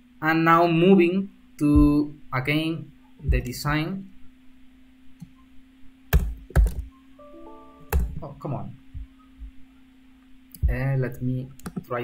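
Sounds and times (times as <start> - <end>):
steady low hum: 0.0 - 12.0
computer keystrokes: 6.1 - 6.9, 7.9 - 8.2, 10.6 - 11.9
electronic alert chime: 7.2 - 8.4.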